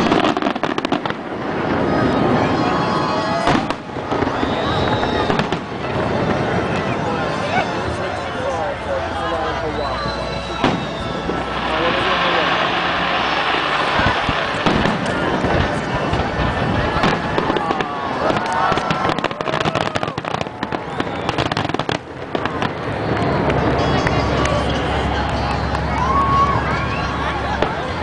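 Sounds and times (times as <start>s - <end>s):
fireworks bursting: 0.0s - 7.5s, 9.8s - 25.8s.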